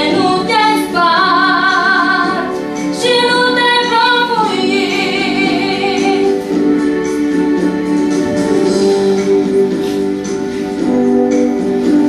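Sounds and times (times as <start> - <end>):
woman singing with vibrato: 0.0 - 7.0.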